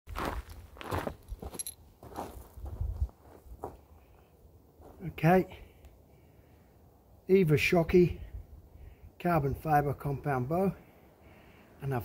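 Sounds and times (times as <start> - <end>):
footsteps: 0.1 - 5.1.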